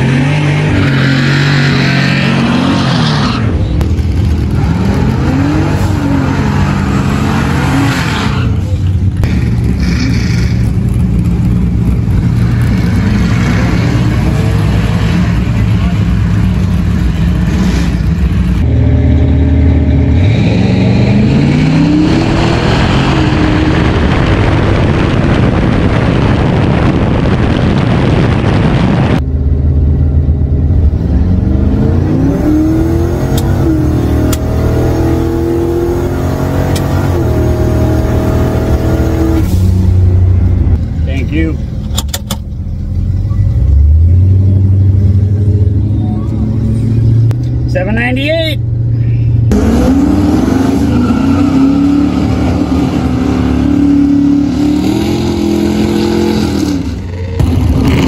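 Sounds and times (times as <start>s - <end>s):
car engine revving: 0.0s - 58.0s
rush of wind: 20.8s - 41.0s.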